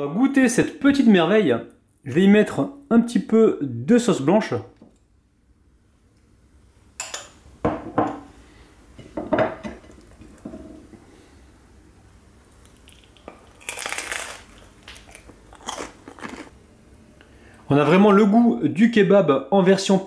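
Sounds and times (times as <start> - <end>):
metal spoon clinking on glass: 7.0 - 7.4
chewing: 12.6 - 16.5
crunching bite into crisp bread: 12.7 - 16.5.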